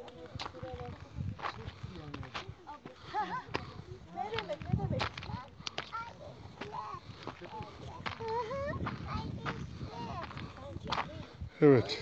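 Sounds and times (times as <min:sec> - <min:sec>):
footsteps on loose stone: 0:00.0 - 0:11.2
indistinct voices talking: 0:00.0 - 0:12.0.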